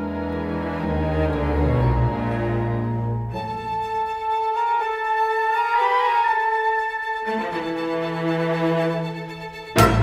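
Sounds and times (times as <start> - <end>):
flute holding long notes: 4.2 - 7.6.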